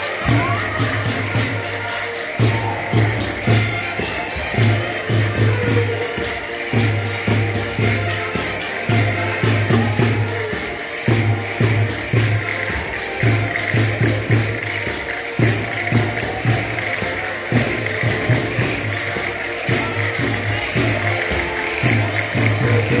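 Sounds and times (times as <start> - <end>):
jingling percussion: 0.0 - 23.0.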